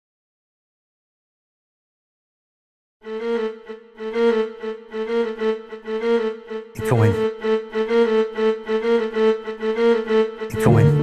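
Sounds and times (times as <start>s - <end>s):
violin bowing low note: 10.5s - 11.0s.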